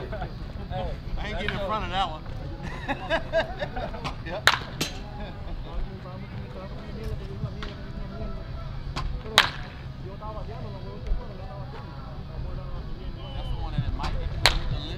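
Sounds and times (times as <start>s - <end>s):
faint voices: 0.0s - 14.9s
bat cracking against ball: 4.0s - 5.1s, 8.9s - 9.8s, 14.0s - 14.9s.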